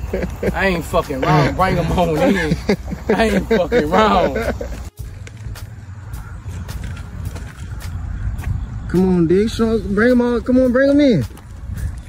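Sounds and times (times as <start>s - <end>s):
wind rumble on microphone: 5.0s - 12.0s.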